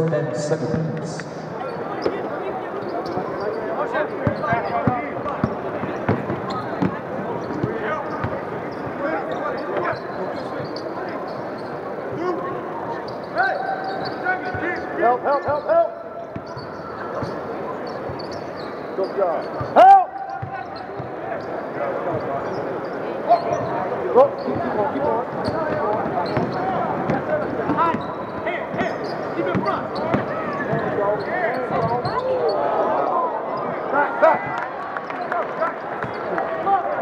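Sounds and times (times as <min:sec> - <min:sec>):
players' voices: 0:00.0 - 0:37.0.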